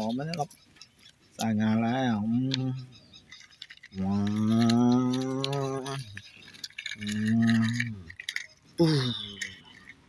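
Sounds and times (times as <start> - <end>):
toy truck rattling over gravel: 3.2 - 10.0.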